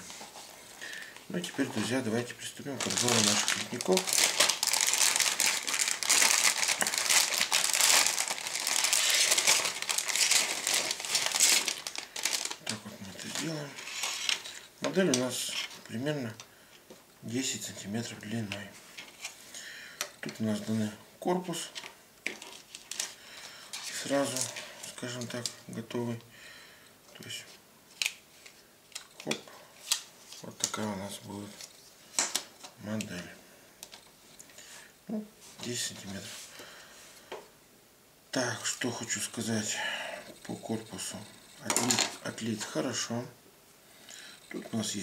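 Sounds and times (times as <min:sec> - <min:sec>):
plastic bag crinkling: 0:02.7 - 0:14.6, 0:41.6 - 0:42.5.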